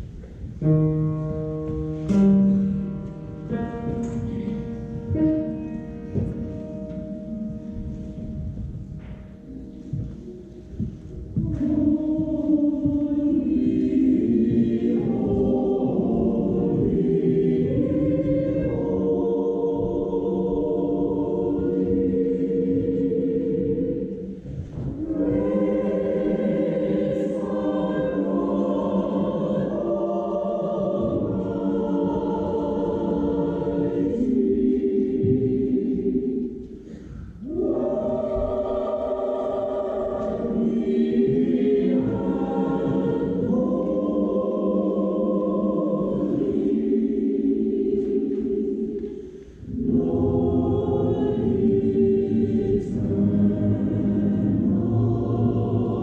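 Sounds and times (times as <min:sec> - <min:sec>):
church choir singing: 0:00.0 - 0:56.0.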